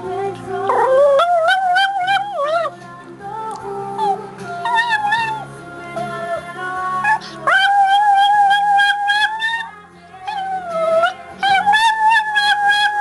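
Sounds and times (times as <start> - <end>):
quiet music: 0.0 - 13.0
dog howling: 0.7 - 2.7, 7.4 - 9.7, 10.3 - 13.0.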